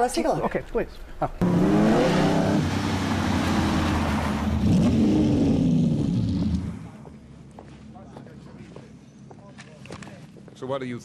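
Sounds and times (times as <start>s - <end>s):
racing car engine revving: 1.4s - 7.1s.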